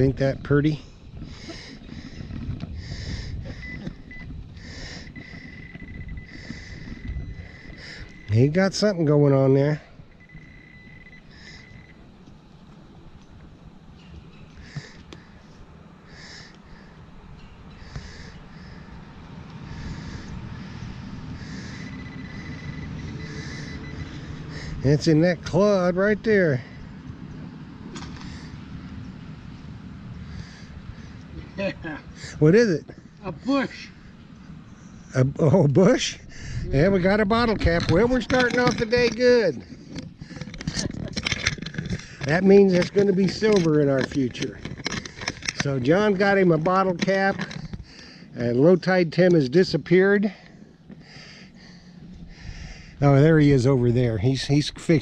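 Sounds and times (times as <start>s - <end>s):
wind rumble on microphone: 0.0s - 8.6s, 35.9s - 45.6s
low wind-like rumble: 0.0s - 55.0s
metal detector pinpointer beeping: 3.5s - 9.2s, 10.0s - 12.1s, 21.6s - 24.3s
breathy hissing: 4.6s - 8.3s, 11.2s - 11.9s, 14.6s - 17.1s, 17.7s - 24.8s, 50.3s - 53.0s.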